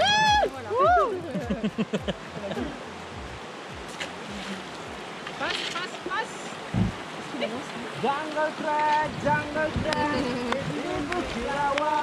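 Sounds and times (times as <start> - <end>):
river water rushing over stones: 0.0 - 12.0.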